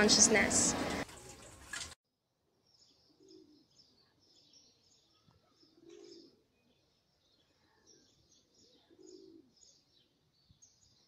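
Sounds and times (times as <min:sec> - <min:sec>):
small birds chirping: 0:02.6 - 0:11.0
low dove coos: 0:05.5 - 0:06.8, 0:07.5 - 0:09.8.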